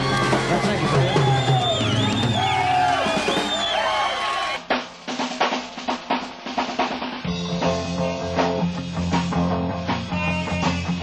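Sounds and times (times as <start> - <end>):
drum kit snare and bass drum: 0.0 - 11.0.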